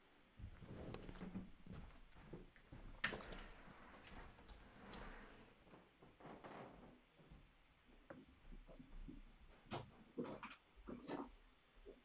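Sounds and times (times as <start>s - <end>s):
rustling: 0.4s - 6.6s.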